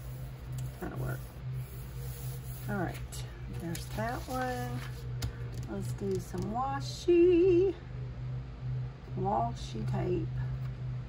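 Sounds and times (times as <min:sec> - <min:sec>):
paper being handled: 0:00.0 - 0:05.1
low electrical hum: 0:00.0 - 0:11.0.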